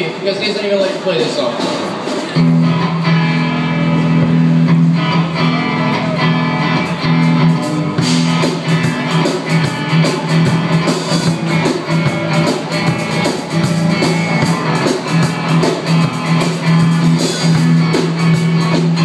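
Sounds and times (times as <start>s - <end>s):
strummed guitars: 0.8s - 19.0s.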